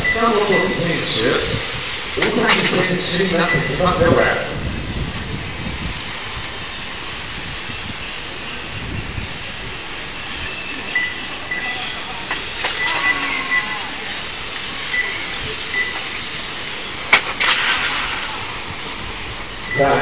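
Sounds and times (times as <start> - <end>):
short high-pitched beeps: 0.0 - 1.6, 2.3 - 4.0, 10.6 - 12.0, 12.8 - 14.0, 14.8 - 16.1, 19.6 - 20.0
electric motors whining: 0.0 - 20.0.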